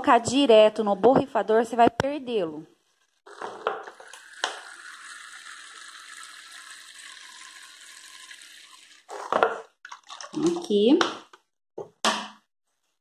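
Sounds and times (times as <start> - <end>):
liquid pouring into plastic cup: 3.3 - 9.3, 9.9 - 10.7.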